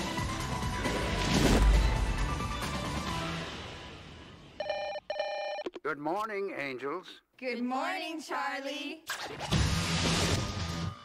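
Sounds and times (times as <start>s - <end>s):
telephone ringing: 4.6s - 5.7s.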